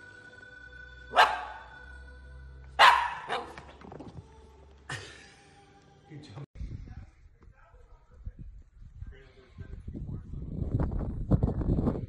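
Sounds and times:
puppy barking: 1.1s - 1.8s, 2.8s - 3.7s.

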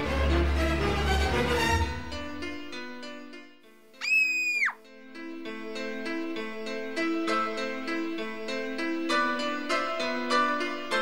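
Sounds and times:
soft soundtrack music: 0.0s - 4.0s, 4.8s - 11.0s
girl screaming: 4.0s - 4.8s.

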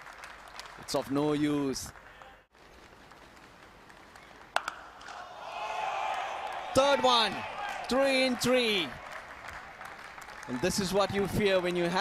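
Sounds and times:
cricket bat striking ball: 4.5s - 5.2s.

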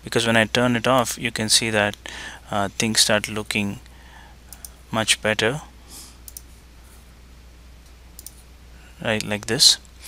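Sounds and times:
low steady hum: 0.0s - 10.0s
computer mouse clicks: 4.5s - 4.8s, 6.3s - 6.5s, 7.8s - 8.4s.

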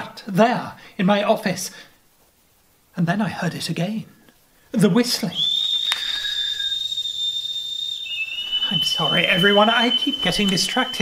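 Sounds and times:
high-pitched whistle: 5.3s - 11.0s.

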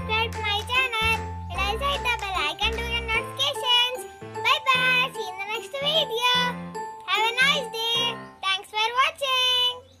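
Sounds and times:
background music: 0.0s - 9.1s
child singing: 0.0s - 9.8s.

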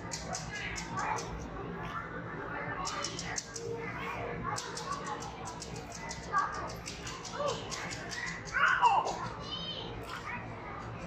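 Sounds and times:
children calling out: 6.1s - 10.6s.

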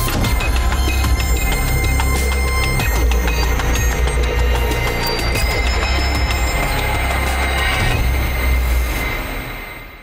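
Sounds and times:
theme music with rumbling bass: 0.0s - 10.0s.

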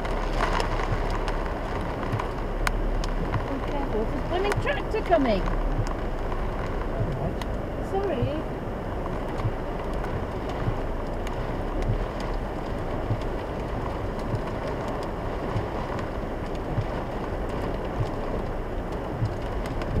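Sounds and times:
car engine running low: 0.0s - 20.0s
heavy rain on car roof: 0.0s - 20.0s
windscreen wiper knocks: 0.0s - 20.0s.

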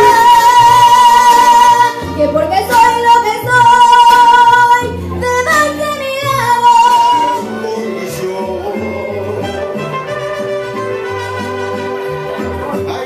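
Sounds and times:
woman singing into a microphone: 0.0s - 8.0s
karaoke backing track: 0.0s - 13.0s.

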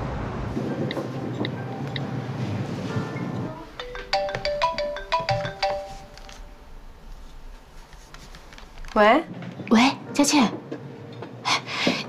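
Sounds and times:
mobile phone ringtone: 3.8s - 6.5s.

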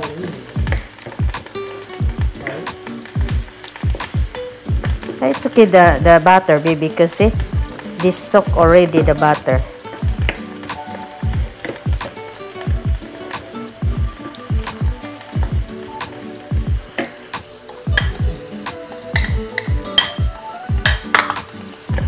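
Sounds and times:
background music with deep bass: 0.0s - 22.0s
garlic and onion sizzling in pan: 0.0s - 22.0s
spatula clicking against pan: 19.1s - 20.2s.

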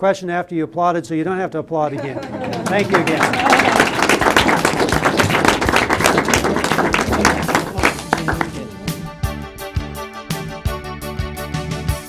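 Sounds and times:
audience applauding: 1.9s - 9.0s
keyboard music: 4.3s - 12.0s.

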